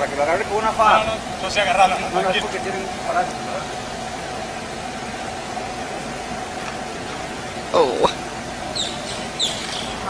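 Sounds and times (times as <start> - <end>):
street background noise: 0.0 - 10.0
high falling chirps: 8.7 - 10.0.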